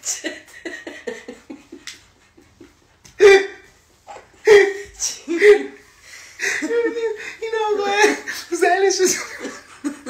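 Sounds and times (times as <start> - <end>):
man laughing: 4.5 - 5.8, 6.4 - 10.0.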